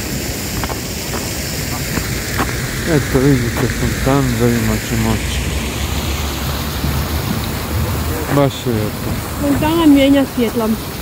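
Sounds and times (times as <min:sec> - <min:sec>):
fountain water splashing: 0:00.0 - 0:11.0
low rumble: 0:01.5 - 0:09.6.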